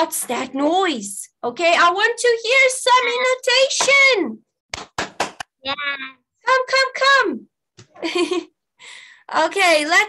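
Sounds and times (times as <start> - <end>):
voice over video call: 0.0 - 4.4, 5.6 - 7.9.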